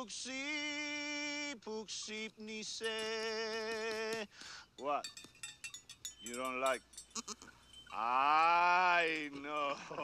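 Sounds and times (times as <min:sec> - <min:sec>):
goat bleating: 0:07.2 - 0:07.5.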